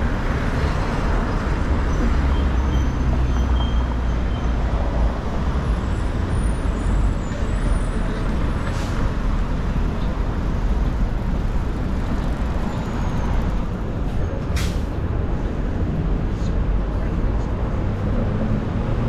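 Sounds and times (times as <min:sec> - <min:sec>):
traffic rumbling: 0:00.0 - 0:19.0.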